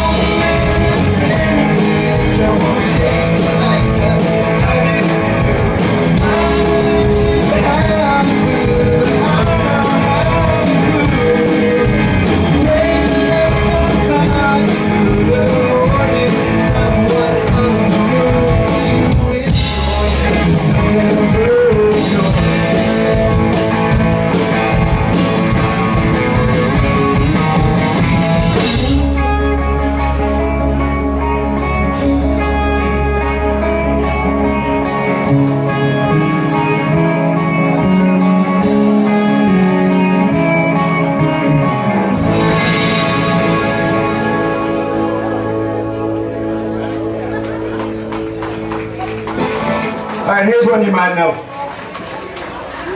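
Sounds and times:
person singing: 0.0 - 47.8
rock band playing: 0.0 - 52.9.

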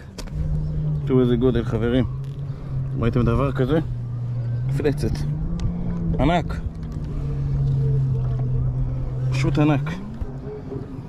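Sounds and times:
low rumble: 0.0 - 11.0
motorboat engine droning: 0.0 - 11.0.

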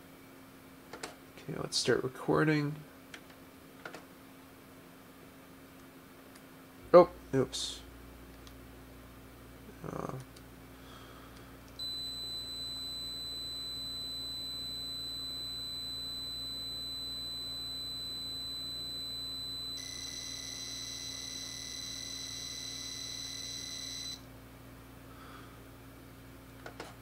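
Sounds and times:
high-pitched buzzer tone: 11.8 - 24.2
rapid two-tone data warble: 12.2 - 24.2.

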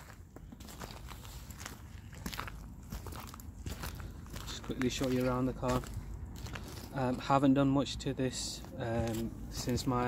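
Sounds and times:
footsteps on gravel: 0.0 - 7.6, 8.5 - 10.0.

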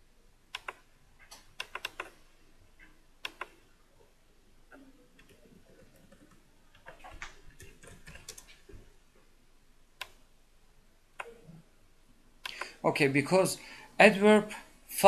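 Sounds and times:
keyboard and mouse clicks: 0.5 - 2.2, 2.8 - 3.6, 4.7 - 8.9, 10.0 - 10.2, 11.2 - 11.6, 12.4 - 12.8.

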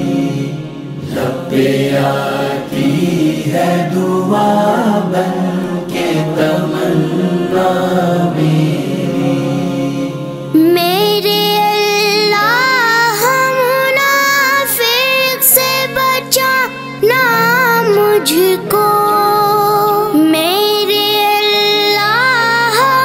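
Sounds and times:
chorus chanting a low drone: 0.0 - 11.8.

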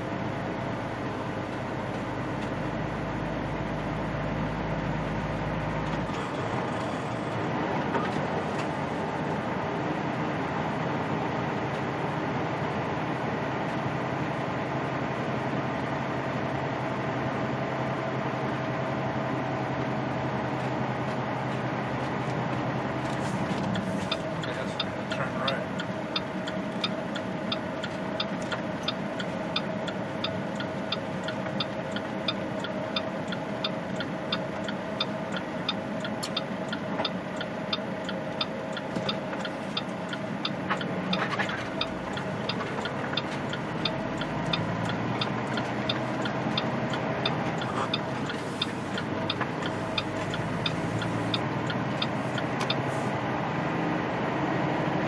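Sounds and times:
road noise: 0.0 - 55.0
truck diesel engine hum: 0.0 - 55.0
turn signal clicking: 23.0 - 53.0.

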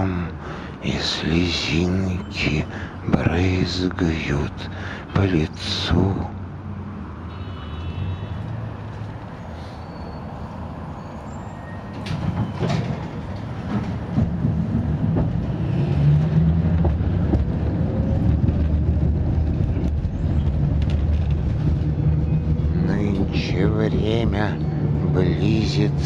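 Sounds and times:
bus engine and road rumble: 0.0 - 26.0
rattles and knocks: 12.0 - 21.9.

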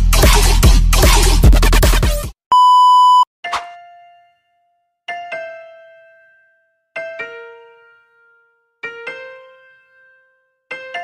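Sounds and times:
electronic beep: 2.5 - 3.3.

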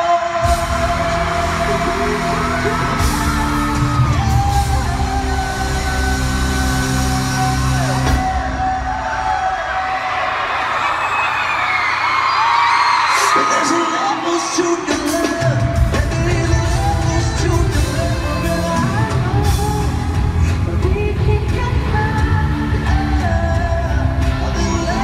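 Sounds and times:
fans screaming and whooping: 0.0 - 19.6
live pop music: 0.0 - 25.0
heavy bass beat: 0.4 - 8.4.

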